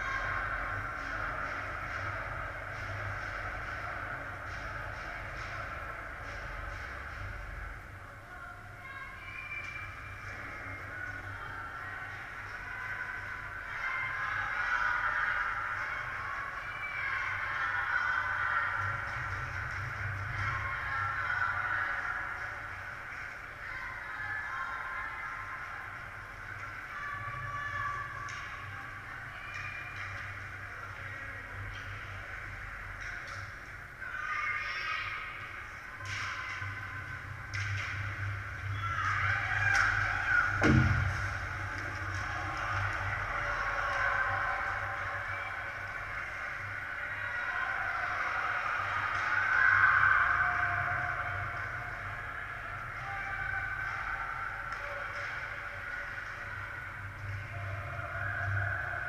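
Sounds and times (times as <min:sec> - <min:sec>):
hockey sticks and puck clicking: 0:00.2 - 0:07.6, 0:28.1 - 0:33.8, 0:35.9 - 0:45.1, 0:52.9 - 0:58.6
steady low rumble: 0:35.4 - 0:47.0.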